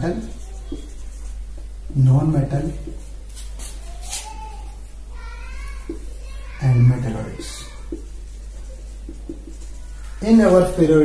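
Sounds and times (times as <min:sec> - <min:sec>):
marker scratching on whiteboard: 0:00.0 - 0:11.0
marker squeak: 0:00.1 - 0:01.4, 0:03.6 - 0:04.8, 0:07.4 - 0:10.8.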